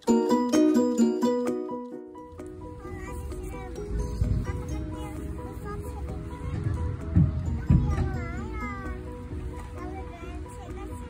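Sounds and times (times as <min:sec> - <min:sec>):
background music: 0:00.0 - 0:11.0
low thumps: 0:03.3 - 0:08.6.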